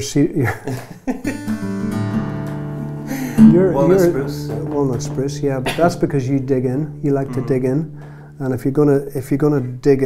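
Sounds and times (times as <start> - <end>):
acoustic guitar chord strummed: 1.3 - 9.6
person speaking: 3.2 - 10.0.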